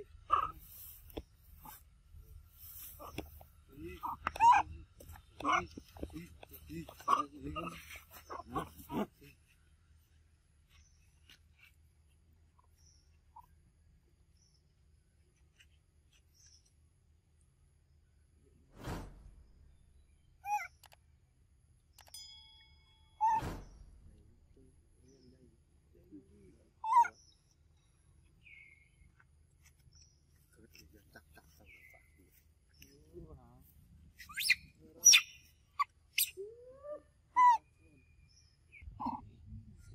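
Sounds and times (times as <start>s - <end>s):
monkey calls: 0.0s - 0.6s, 4.0s - 9.2s, 20.4s - 20.8s, 23.2s - 23.5s, 26.8s - 27.2s, 34.2s - 37.8s, 38.7s - 39.3s.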